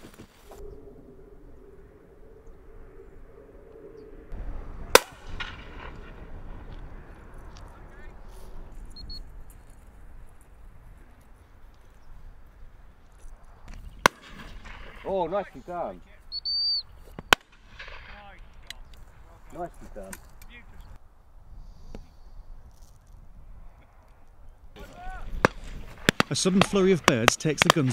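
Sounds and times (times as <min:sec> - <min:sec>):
faint outdoor background: 0:00.0 - 0:27.9
sharp crack: 0:04.3 - 0:08.2, 0:13.6 - 0:15.4, 0:17.2 - 0:19.0, 0:24.8 - 0:27.9
shotgun shot: 0:04.9 - 0:06.2, 0:14.0 - 0:15.1.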